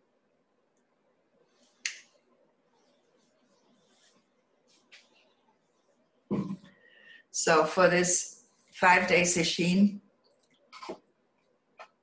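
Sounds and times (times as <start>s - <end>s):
soft handling rustle: 1.4s - 6.0s.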